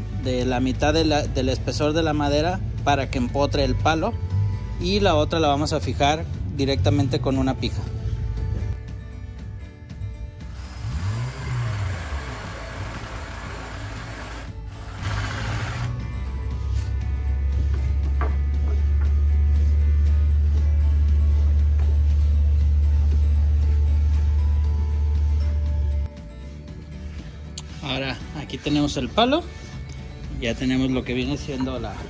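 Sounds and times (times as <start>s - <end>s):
background music: 0.0s - 32.0s
electric drill boring into wood: 10.5s - 16.0s.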